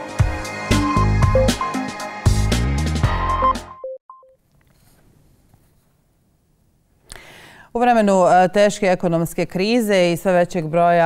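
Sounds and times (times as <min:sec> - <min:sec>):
electronic two-note beep: 0:00.7 - 0:01.8.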